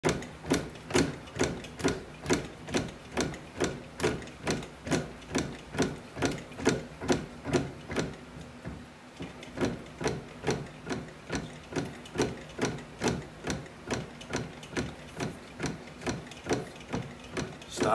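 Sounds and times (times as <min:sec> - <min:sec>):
bat-rolling press clicking: 0:00.0 - 0:17.9.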